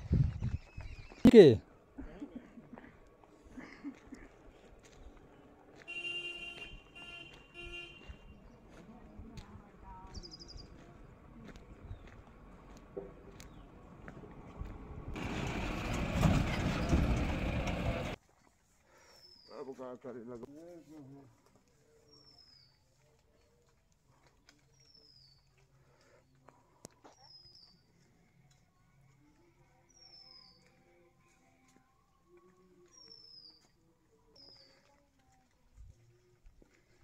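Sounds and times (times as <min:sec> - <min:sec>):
truck passing by: 0:10.6 - 0:18.2.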